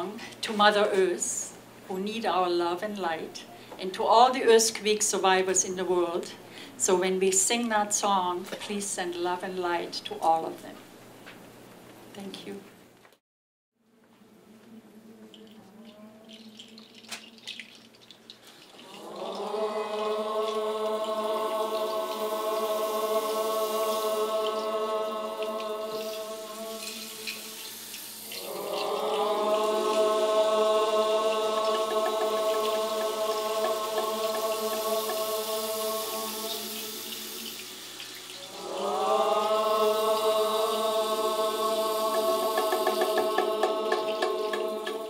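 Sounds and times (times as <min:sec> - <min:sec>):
choir breathing: 0:18.8 - 0:37.7, 0:38.4 - 0:45.0
choir chanting sustained chords: 0:18.8 - 0:37.8, 0:38.4 - 0:45.0.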